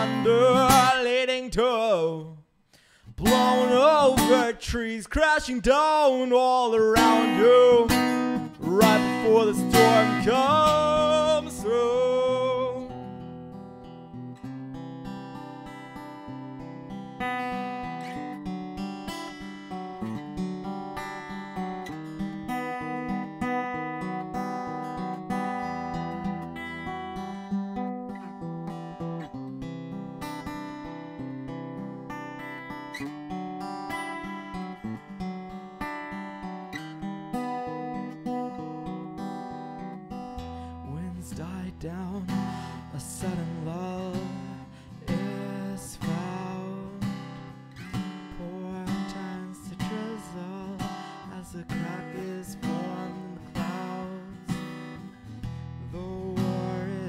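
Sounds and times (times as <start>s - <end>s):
acoustic guitar strummed chords: 0.0s - 57.0s.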